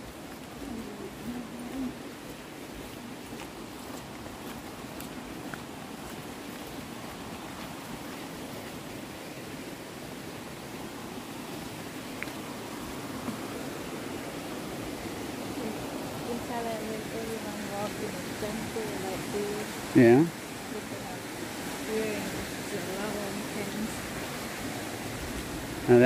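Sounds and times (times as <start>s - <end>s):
steady rushing outdoor noise: 0.0s - 26.0s
person's voice: 0.6s - 2.0s, 15.6s - 21.2s, 21.9s - 24.0s.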